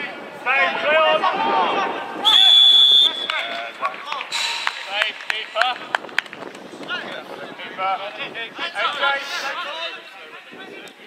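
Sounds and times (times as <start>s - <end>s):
referee's whistle: 2.2s - 3.5s.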